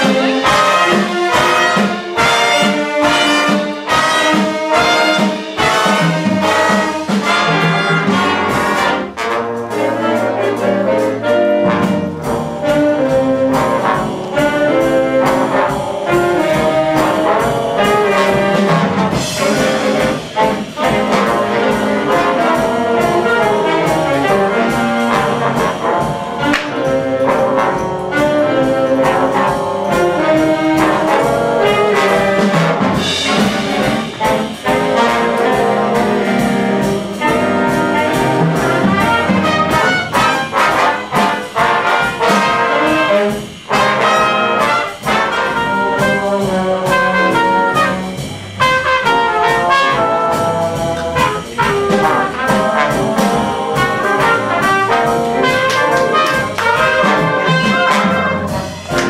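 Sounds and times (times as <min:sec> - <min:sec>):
big band jazz: 0:00.0 - 0:59.0.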